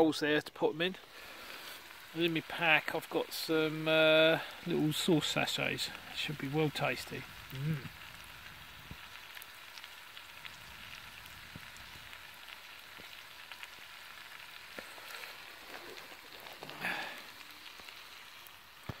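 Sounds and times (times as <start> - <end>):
burgers sizzling in a tin: 0.0 - 19.0
campfire crackles: 0.0 - 19.0.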